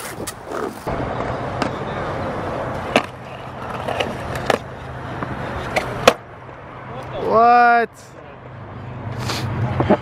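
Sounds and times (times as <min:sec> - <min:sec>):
skateboard wheels rolling on concrete: 0:00.0 - 0:07.8, 0:09.0 - 0:10.0
skateboard clacking on ledge: 0:02.7 - 0:04.7.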